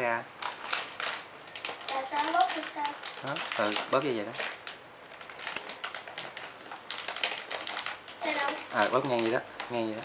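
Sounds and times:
plastic bag crinkling: 0.4s - 10.0s
plastic toys clicking: 0.4s - 10.0s.

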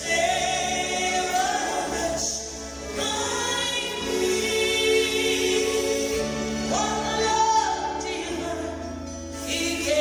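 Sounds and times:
woman singing gospel: 0.0s - 10.0s.

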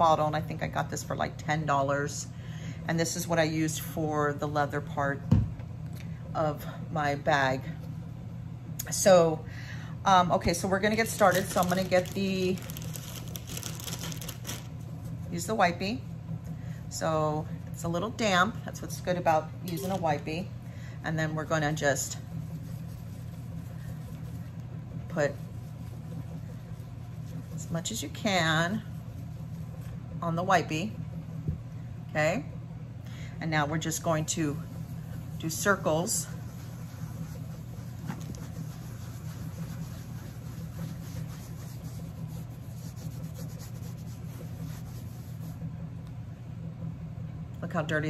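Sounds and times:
appliance motor hum: 1.2s - 48.0s
damp cloth swishing on canvas: 34.4s - 45.6s.

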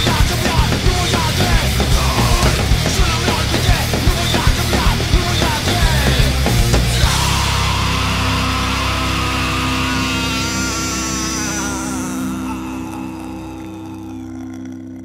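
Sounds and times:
distorted guitar chord ringing: 0.0s - 15.0s.

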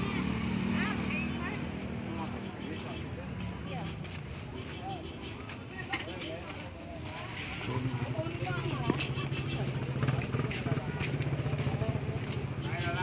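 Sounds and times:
shoppers and vendors talking: 0.0s - 13.0s.

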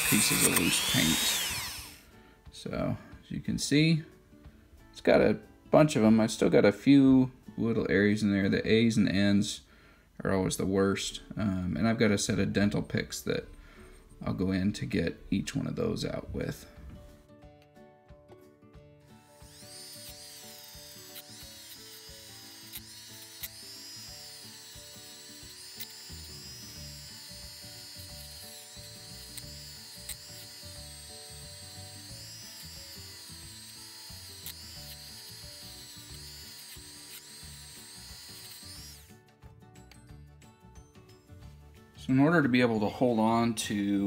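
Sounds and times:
rotary tool brush whine: 0.0s - 2.1s, 19.2s - 39.2s.

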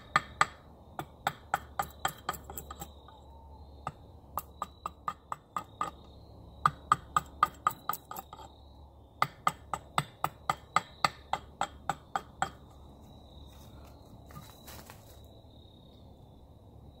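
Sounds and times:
hatchet chopping hard wood: 0.0s - 2.9s, 3.9s - 8.5s, 9.2s - 12.7s.

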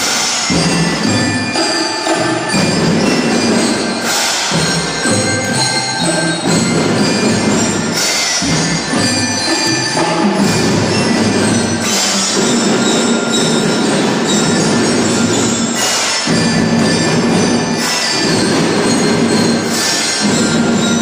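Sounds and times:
drum band music: 0.0s - 21.0s
xylophones playing a tune: 0.0s - 21.0s.

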